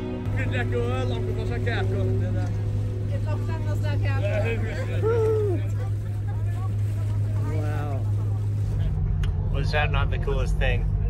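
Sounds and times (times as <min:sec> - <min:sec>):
boat engine droning: 0:00.0 - 0:11.0
low engine hum inside cabin: 0:00.2 - 0:11.0.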